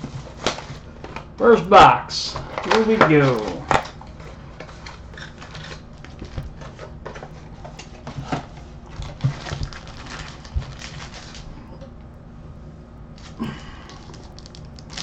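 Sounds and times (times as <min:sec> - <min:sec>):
foil packs rustling and crinkling: 0:00.0 - 0:12.2, 0:13.0 - 0:15.0.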